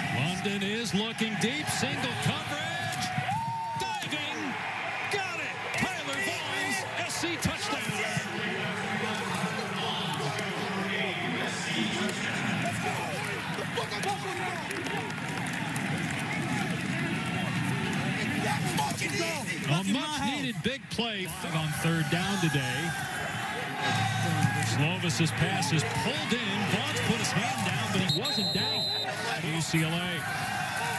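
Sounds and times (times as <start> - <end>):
people shouting and cheering: 0.0 - 30.9.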